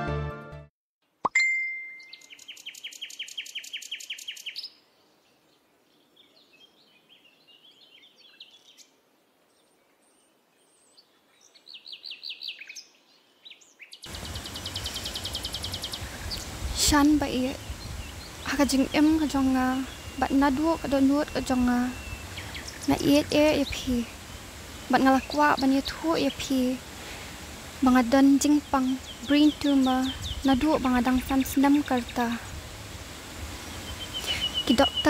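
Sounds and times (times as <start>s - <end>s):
faint bird chirps: 1.8s - 26.8s, 27.9s - 32.4s, 33.6s - 35.0s
outdoor background noise: 2.0s - 35.0s.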